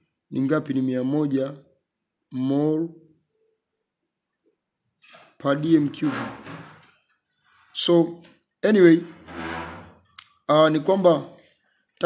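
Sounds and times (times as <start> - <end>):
cricket chirping: 0.0 - 12.0
man speaking: 0.3 - 1.6, 2.4 - 3.0, 5.4 - 6.4, 7.8 - 9.1, 10.5 - 11.3.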